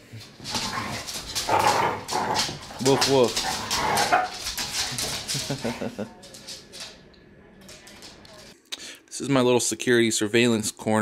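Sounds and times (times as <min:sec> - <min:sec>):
dogs scuffling: 0:00.1 - 0:08.6.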